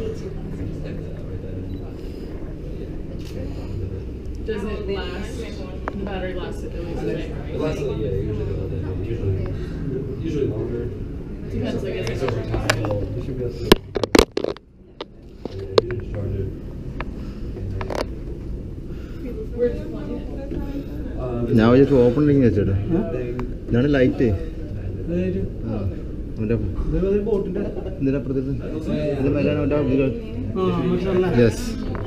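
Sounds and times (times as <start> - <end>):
steady low rumble: 0.0 - 28.8
faint indistinct voices: 0.0 - 32.0.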